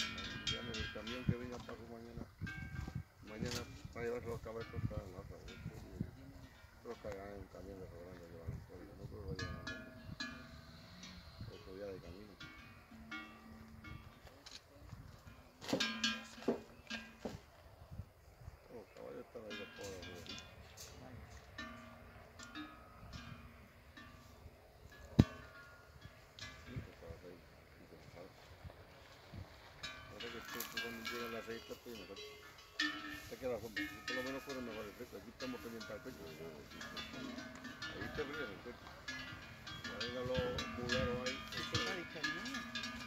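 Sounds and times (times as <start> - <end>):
cattle bells clanking: 0.0 - 17.6, 18.7 - 43.0
faint voices talking: 3.2 - 15.7.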